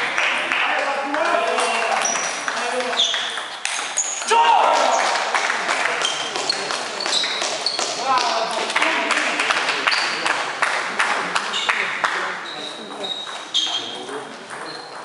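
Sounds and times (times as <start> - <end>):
shoes squeaking on floor: 1.6 - 5.2, 5.9 - 8.6, 9.8 - 10.4, 11.5 - 15.0.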